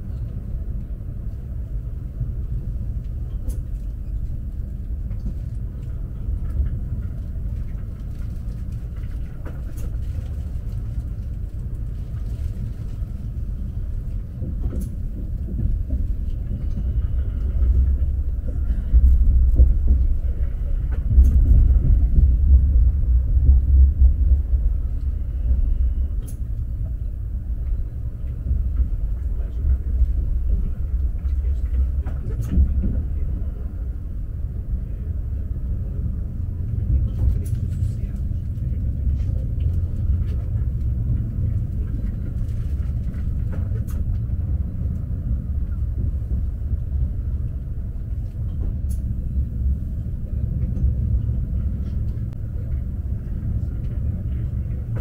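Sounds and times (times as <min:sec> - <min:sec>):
train rumbling from inside cabin: 0:00.0 - 0:55.0.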